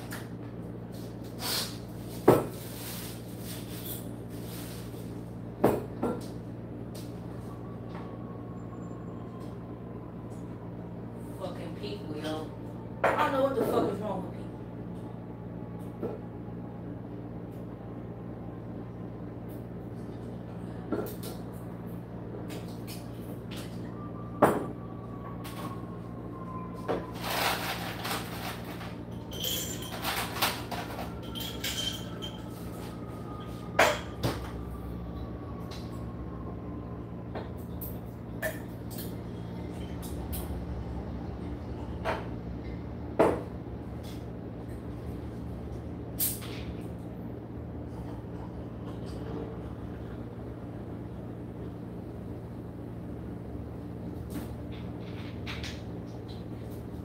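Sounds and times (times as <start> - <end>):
low room hum: 0.0 - 57.0.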